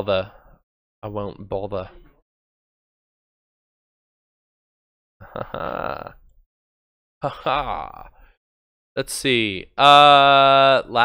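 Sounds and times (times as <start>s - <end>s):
man burping: 5.2s - 6.3s, 7.2s - 8.1s.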